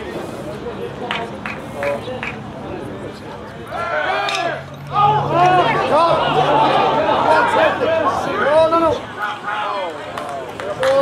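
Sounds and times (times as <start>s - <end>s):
spectators yelling and cheering: 3.6s - 11.0s.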